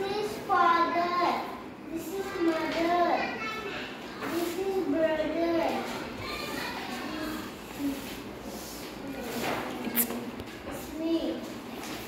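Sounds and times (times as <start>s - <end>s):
boy speaking: 0.0s - 11.6s.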